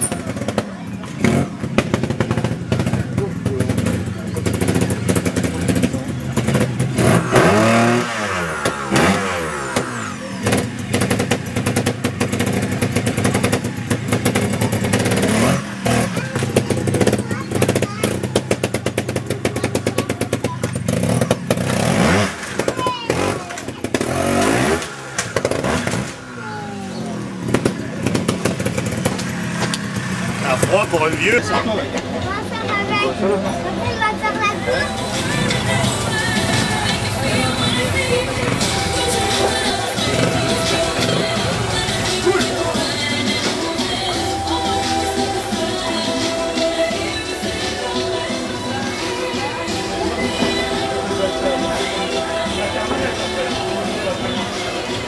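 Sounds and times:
motorcycle engine revving: 0.0 - 55.0
clattering knocks of bike: 9.8 - 26.3, 27.4 - 30.8.

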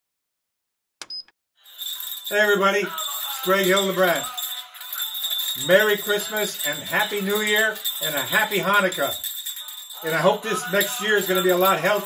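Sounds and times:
metallic clink with high ring: 1.7 - 12.0.

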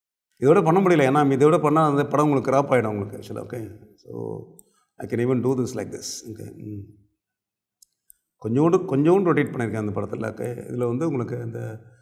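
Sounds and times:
man speaking: 0.4 - 6.9, 8.4 - 11.8.

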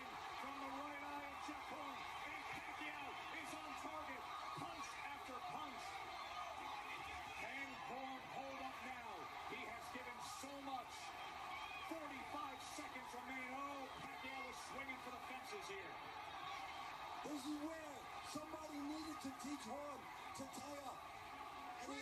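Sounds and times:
man commentating on tv: 0.0 - 22.0.

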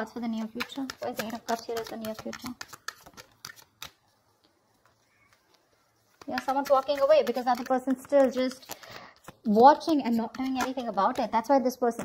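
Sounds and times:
cards clicking and tapping: 0.3 - 12.0.

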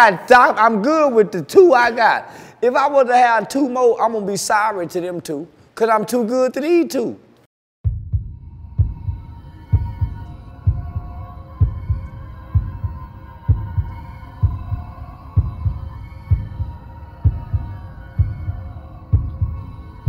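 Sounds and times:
steady droning tone: 8.2 - 20.0.

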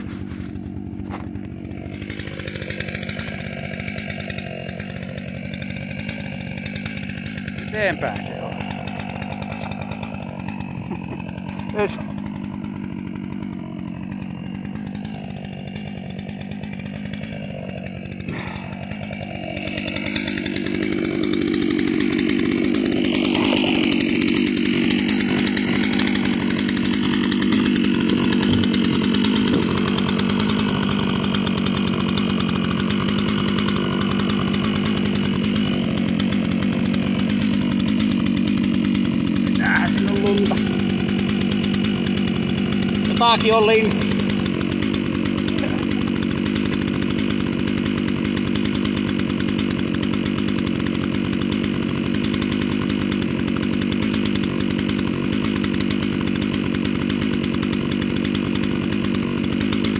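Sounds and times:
chainsaw running: 0.0 - 59.9.

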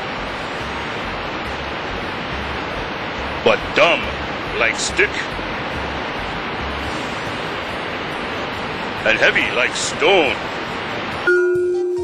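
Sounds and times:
waterfall rushing: 0.0 - 11.3.

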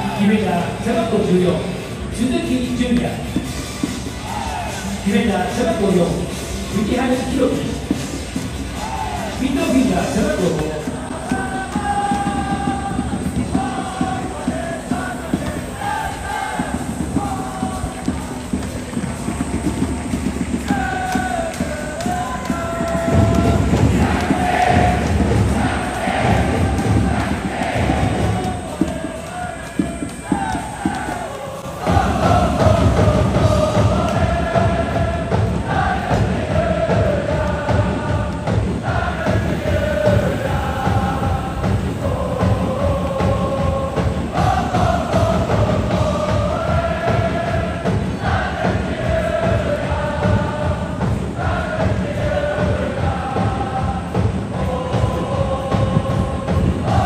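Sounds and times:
crowd singing a chant: 0.0 - 57.0
steady beat: 0.0 - 57.0.

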